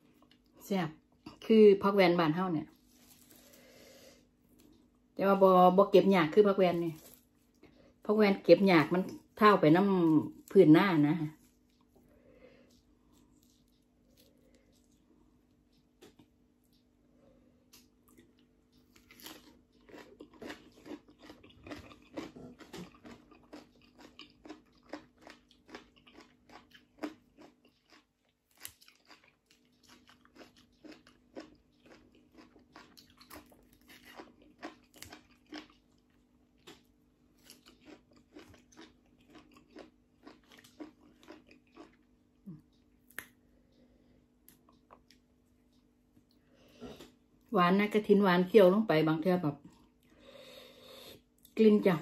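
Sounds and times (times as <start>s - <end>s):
faint steady hum: 0.0s - 52.0s
person chewing crunchy greens: 2.6s - 5.0s, 6.4s - 8.0s, 8.8s - 16.8s, 17.6s - 47.5s.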